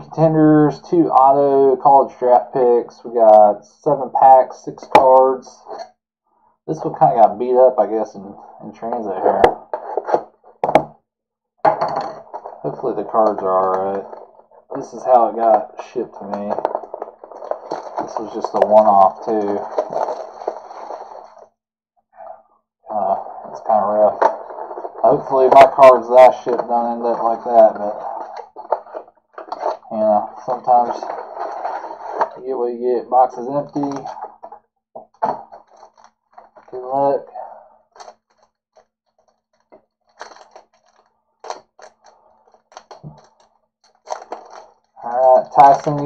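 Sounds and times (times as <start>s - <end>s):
plastic shrink wrap crinkling: 16.3s - 21.4s.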